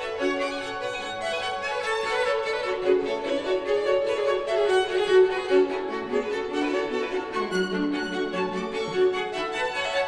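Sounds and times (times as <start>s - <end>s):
string quartet playing quick notes: 0.0s - 10.0s.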